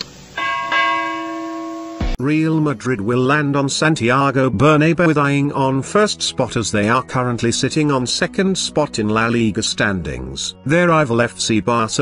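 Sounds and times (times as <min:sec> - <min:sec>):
bell chime: 0:00.4 - 0:02.2.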